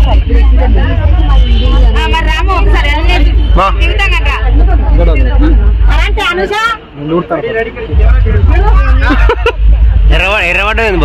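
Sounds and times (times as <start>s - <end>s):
people talking: 0.0s - 11.0s
loud low rumble: 7.9s - 11.0s.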